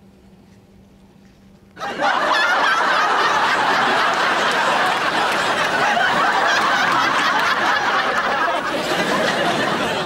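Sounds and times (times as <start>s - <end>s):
crowd laughing: 1.8s - 10.0s.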